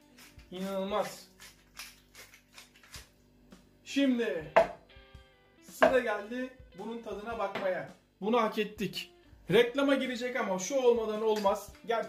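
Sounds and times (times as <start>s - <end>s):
pepper mill grinding clicks: 0.1s - 3.1s.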